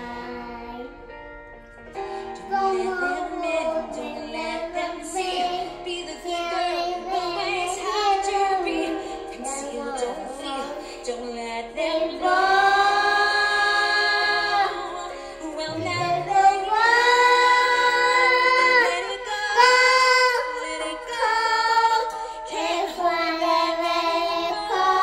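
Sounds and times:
girl singing into microphone: 0.0s - 1.2s, 2.0s - 25.0s.

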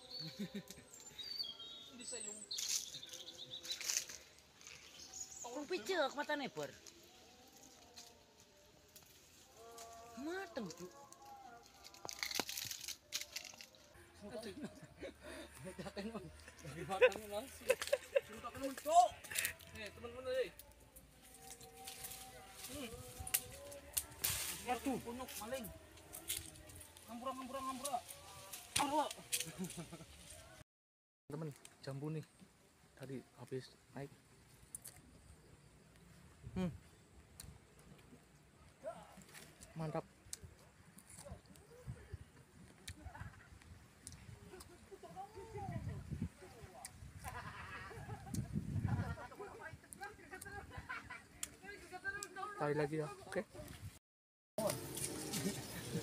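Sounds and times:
voices talking and calling: 0.0s - 30.6s, 35.9s - 54.0s, 54.6s - 56.0s
chewing crisp fruit: 6.8s - 14.0s, 34.5s - 35.2s, 37.2s - 44.8s.

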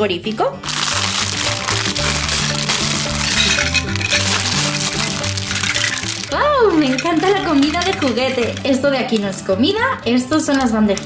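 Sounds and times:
background music with bass line: 0.4s - 11.0s
plastic bag crinkling: 0.6s - 9.5s
plastic toy food tipping out: 0.7s - 9.4s.

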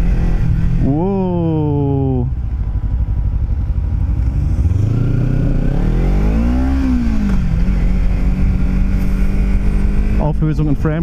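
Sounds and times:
low rumble: 0.0s - 11.0s
motorcycle engine revving: 0.0s - 11.0s.

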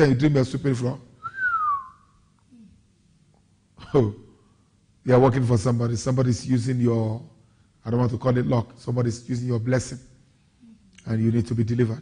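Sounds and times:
person whistling short note: 1.2s - 2.1s.

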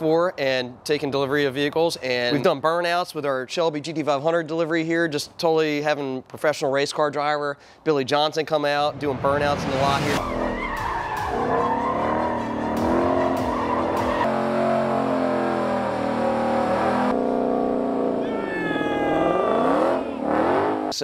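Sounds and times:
tyres squealing on pavement: 10.2s - 14.7s
car engine revving hard: 11.2s - 18.2s, 19.4s - 21.0s.

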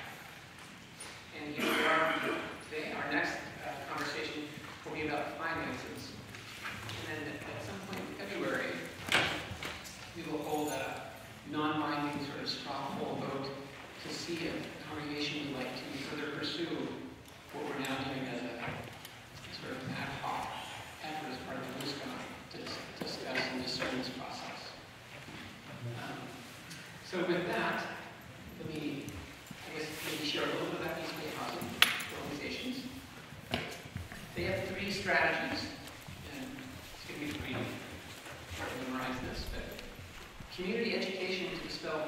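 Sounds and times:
man speaking into a microphone: 1.0s - 9.5s, 10.1s - 24.9s, 25.8s - 42.0s.

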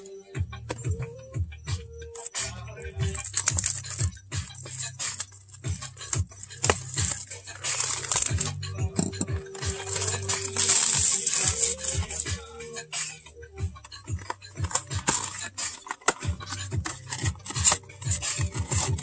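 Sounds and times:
plastic wrap crinkling: 3.1s - 12.6s, 13.8s - 19.0s.

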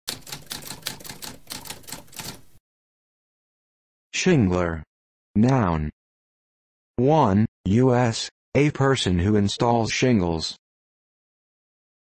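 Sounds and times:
typewriter keys clacking: 0.1s - 2.5s.

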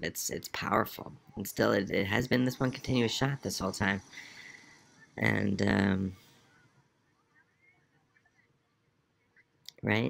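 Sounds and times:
faint tv soundtrack: 0.0s - 10.0s
man saying um: 5.1s - 6.2s.

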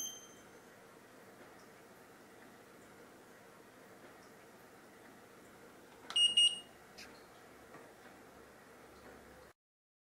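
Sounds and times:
high-pitched electronic beep: 0.0s - 0.4s.

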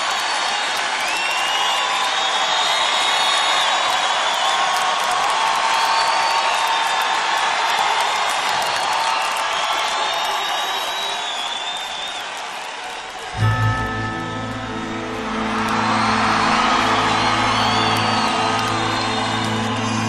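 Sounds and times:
crowd cheering: 0.0s - 20.0s
high gliding tones: 13.4s - 20.0s.

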